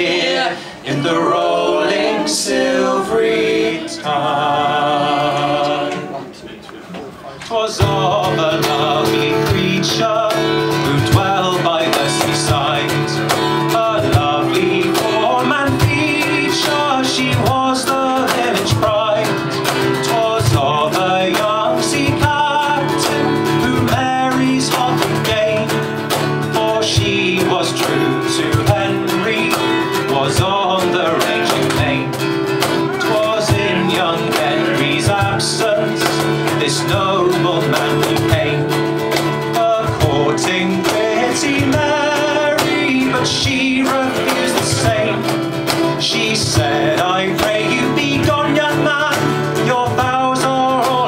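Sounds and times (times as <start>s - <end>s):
cajon beat: 6.9s - 51.0s
strummed acoustic guitar: 7.2s - 51.0s.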